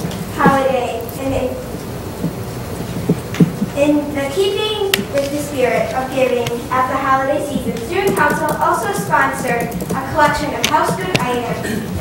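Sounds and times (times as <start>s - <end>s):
background hiss and rumble: 0.0s - 12.0s
child's voice: 0.4s - 1.6s, 3.8s - 11.7s.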